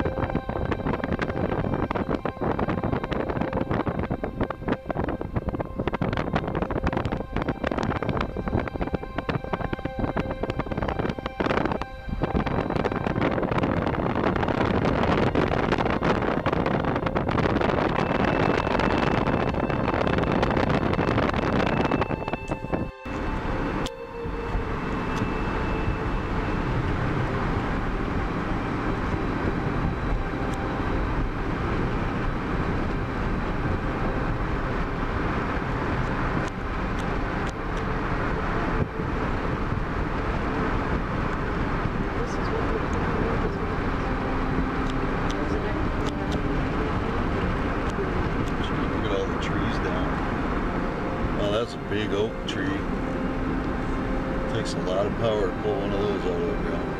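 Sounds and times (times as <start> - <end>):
road and engine noise inside car: 0.0 - 56.9.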